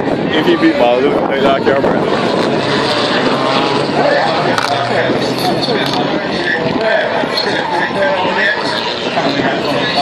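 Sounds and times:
loud car engine running: 0.0 - 10.0.

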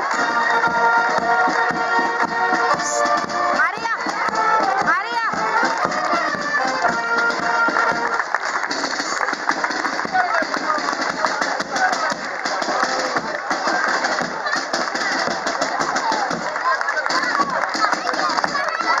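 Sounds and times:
brass band playing: 0.0 - 18.8
crowd chatter: 0.0 - 19.0
children's voices: 13.4 - 19.0.

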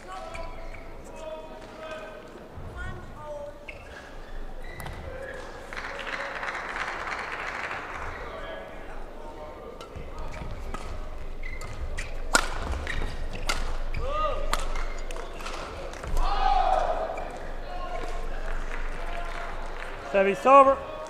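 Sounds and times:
shoes squeaking on court: 0.0 - 1.2, 2.5 - 5.6, 9.8 - 16.1
rackets striking shuttlecock: 11.6 - 16.3.

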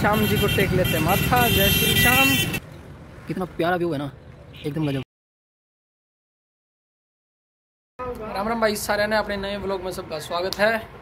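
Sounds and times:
passing traffic: 0.0 - 5.0, 8.0 - 11.0
street voices: 8.0 - 11.0.

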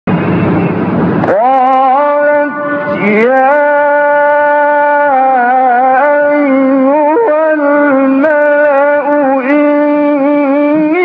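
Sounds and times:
loud rushing noise: 0.1 - 11.0.

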